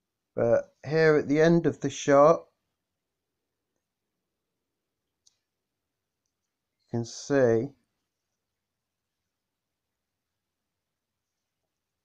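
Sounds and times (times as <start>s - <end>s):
person speaking: 0.4s - 2.6s, 6.9s - 7.9s.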